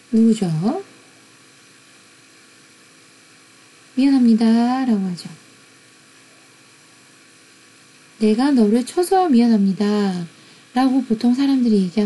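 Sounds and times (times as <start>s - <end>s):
low electrical hum: 0.0s - 12.0s
microphone hiss: 0.0s - 12.0s.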